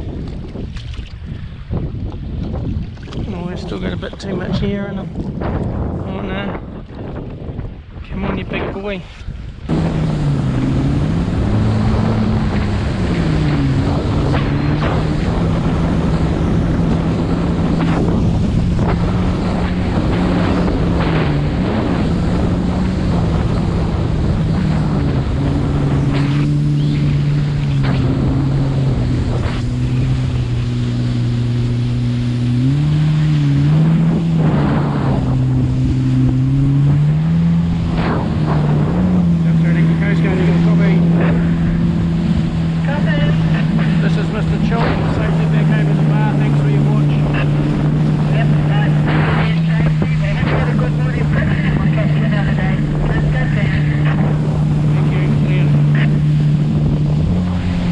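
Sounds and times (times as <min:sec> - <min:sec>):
jet ski engine running: 0:00.0 - 0:57.9
wind on microphone: 0:00.0 - 0:57.9.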